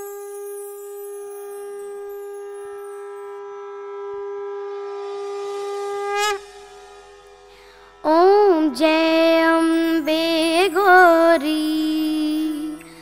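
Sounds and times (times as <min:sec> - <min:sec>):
conch shell blown: 0:00.0 - 0:10.0.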